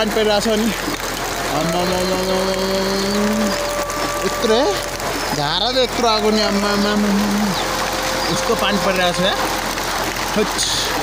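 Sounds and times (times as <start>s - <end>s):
rain hiss: 0.0s - 11.0s.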